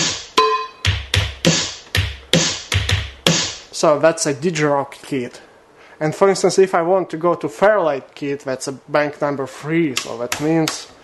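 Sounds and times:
drum machine beat: 0.0s - 3.7s.

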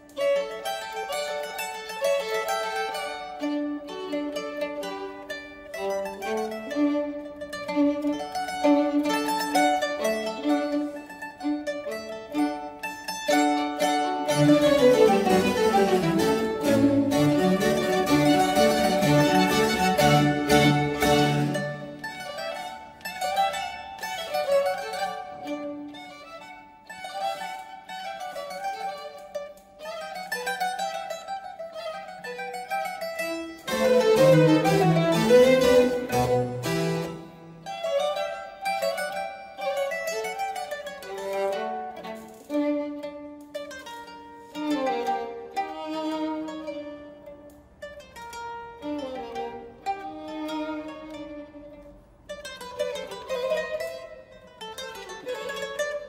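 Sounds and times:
mandolin plucked runs: 0.0s - 42.0s
string quartet playing: 0.0s - 56.0s.

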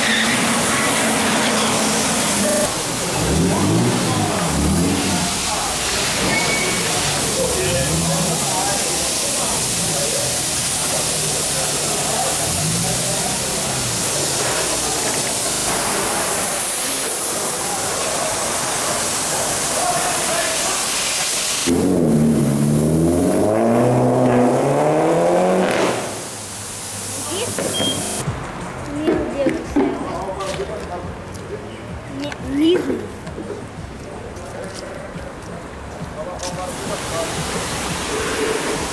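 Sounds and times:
car engine revving: 0.0s - 16.5s, 21.6s - 28.8s
cars passing: 0.0s - 38.9s
street traffic hiss: 0.0s - 38.9s.

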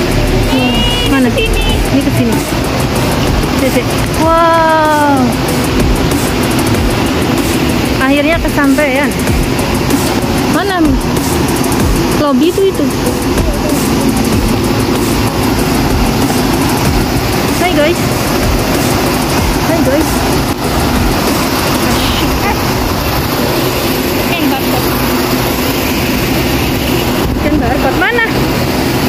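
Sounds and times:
traffic rumble: 0.0s - 29.0s
faint voices of passers-by: 10.4s - 29.0s.

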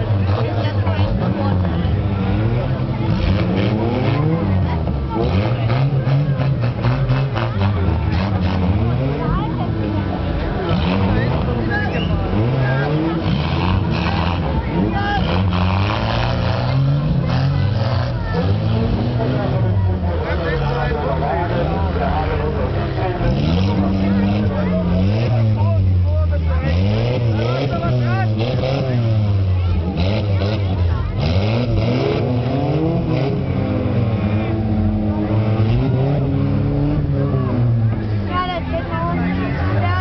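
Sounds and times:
stock car engines revving: 0.0s - 40.0s
voices: 0.0s - 40.0s.

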